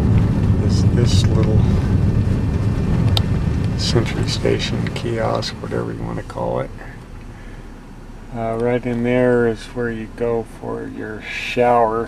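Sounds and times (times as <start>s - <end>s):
engine and road rumble: 0.0s - 12.0s.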